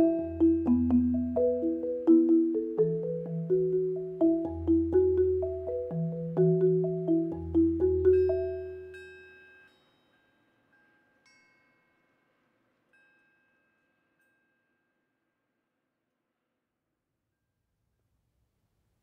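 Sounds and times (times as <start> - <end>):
marimba notes: 0.0 - 9.1.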